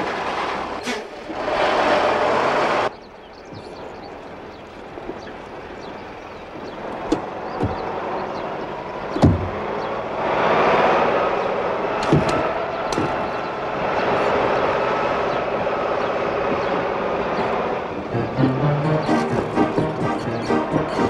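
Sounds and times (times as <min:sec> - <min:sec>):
lorry engine running: 0:05.6 - 0:21.0.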